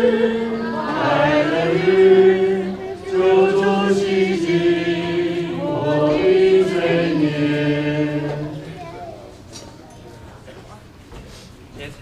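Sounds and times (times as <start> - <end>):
group singing a hymn: 0.0 - 8.9.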